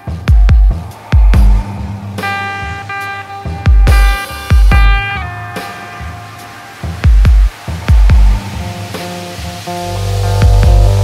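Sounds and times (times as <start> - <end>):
held melodic synth notes: 0.5 - 11.0
kick drum thump: 3.7 - 5.0, 7.0 - 8.4
loud low bass: 9.8 - 11.0.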